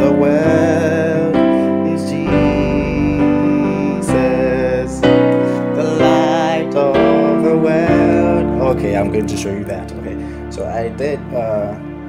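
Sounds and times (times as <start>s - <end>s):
electronic keyboard gospel chords: 0.0s - 12.0s.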